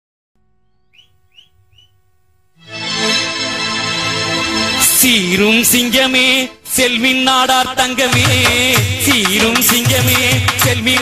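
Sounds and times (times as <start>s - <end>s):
faint steady hum: 0.4s - 2.6s
rising bird-like chirps: 0.6s - 2.0s.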